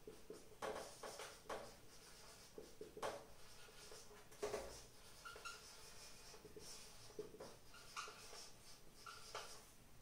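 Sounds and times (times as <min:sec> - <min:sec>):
marker pen writing on whiteboard: 0:00.0 - 0:09.8.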